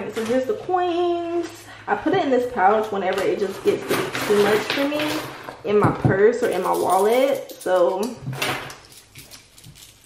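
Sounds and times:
coins clinking and jingling: 6.4 - 8.0.

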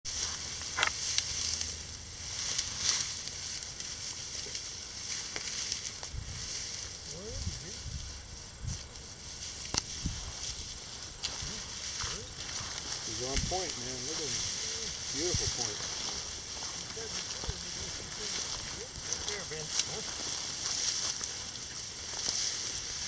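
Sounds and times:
footsteps through dry grass: 0.0 - 23.0.

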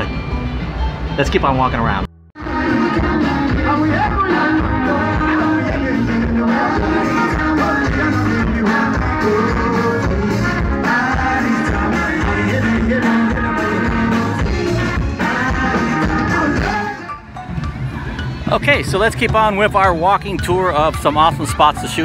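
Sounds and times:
person singing: 2.4 - 17.2
live band playing dance music: 2.4 - 22.0.

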